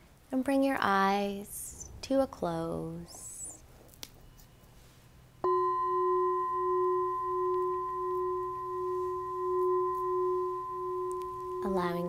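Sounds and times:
singing bowl struck and ringing: 5.4s - 12.0s.

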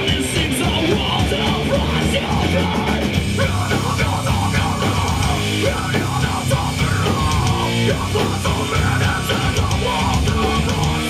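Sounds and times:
bass guitar: 0.0s - 11.0s
distorted electric guitars: 0.0s - 11.0s
drum kit with cymbal strikes: 0.0s - 11.0s.

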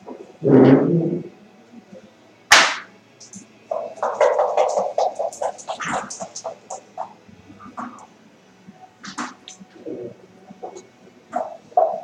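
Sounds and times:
sharp knock on board: 2.5s - 2.9s
dice rattling and checkers clacking: 3.7s - 6.8s.

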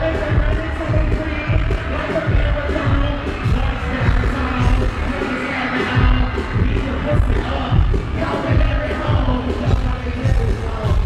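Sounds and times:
heavy bass beat thudding: 0.0s - 11.0s
live hip-hop music: 0.0s - 11.0s.

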